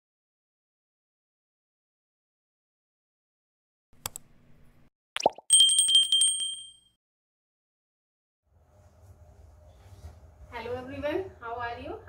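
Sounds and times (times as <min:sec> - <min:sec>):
small bell dinging rapidly: 0:05.5 - 0:06.9.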